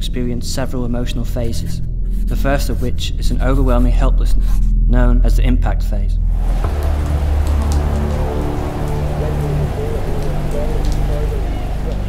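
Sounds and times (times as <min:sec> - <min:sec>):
low steady drone: 0:06.1 - 0:12.0
rain on a car roof: 0:06.3 - 0:12.0.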